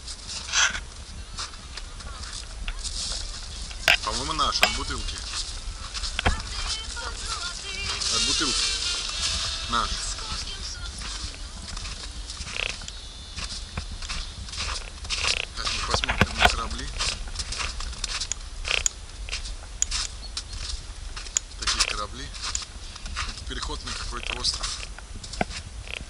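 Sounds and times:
footsteps crunching in snow: 0.0 - 26.0
steady low rumble: 0.0 - 26.0.

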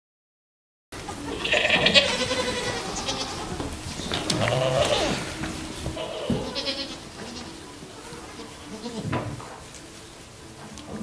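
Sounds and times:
goats bleating: 1.0 - 9.8.

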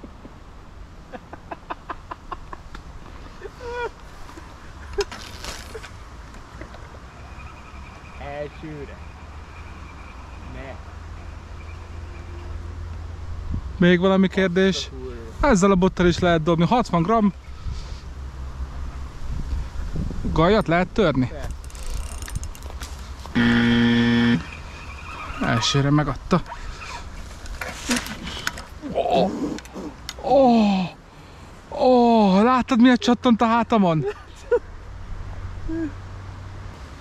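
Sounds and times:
brief rustle: 4.2 - 6.0, 21.4 - 23.4, 26.4 - 28.8
wind buffeting microphone: 19.0 - 22.8
loud low buzzing tone: 23.4 - 24.6.

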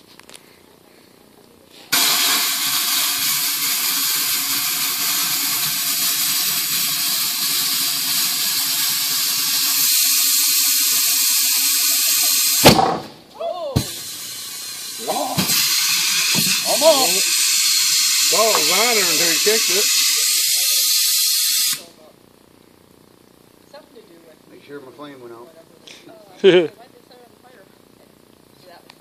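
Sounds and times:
compressed air hissing: 1.7 - 12.8, 13.8 - 21.9
tire bead seating thump: 12.6 - 13.2.

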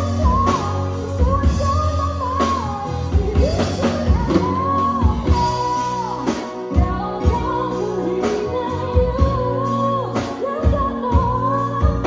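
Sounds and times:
live band playing: 0.0 - 12.0
woman singing: 0.0 - 12.0.

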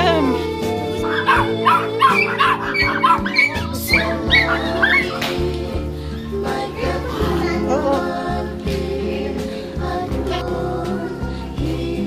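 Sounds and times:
background music: 0.0 - 12.0
small dogs yipping and whining: 1.0 - 5.4.

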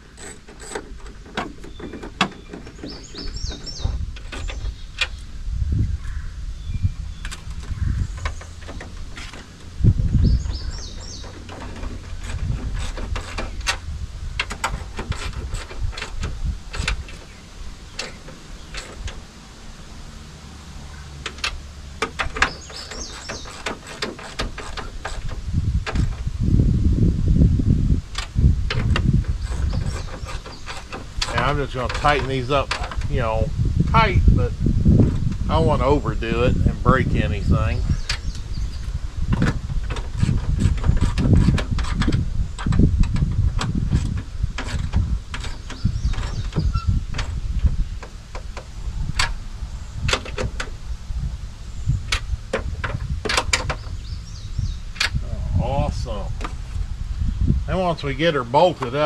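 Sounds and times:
birds chirping: 0.0 - 13.8, 16.7 - 19.3, 22.2 - 26.1, 29.0 - 34.5, 35.5 - 41.3, 45.3 - 50.7, 51.5 - 59.0.

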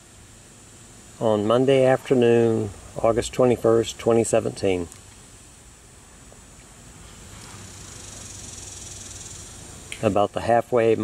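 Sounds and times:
faint steady hiss: 0.0 - 11.0
insects buzzing: 0.0 - 11.0.

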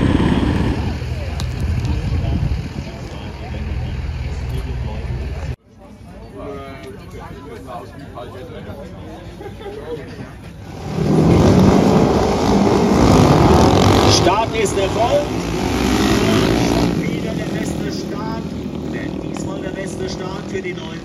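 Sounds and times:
motorcycles accelerating hard: 0.0 - 3.5, 10.6 - 21.0.

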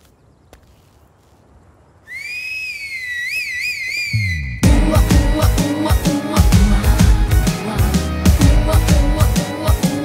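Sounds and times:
loud finger whistle: 2.1 - 4.6.

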